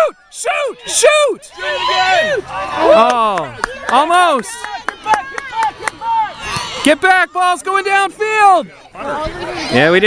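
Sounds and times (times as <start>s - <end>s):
spectators and players shouting: 0.0s - 10.0s.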